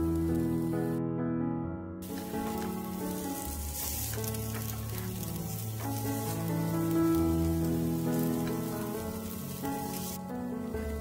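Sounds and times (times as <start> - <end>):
slow background music: 0.0 - 11.0
pancakes sizzling in hot oil: 2.0 - 11.0.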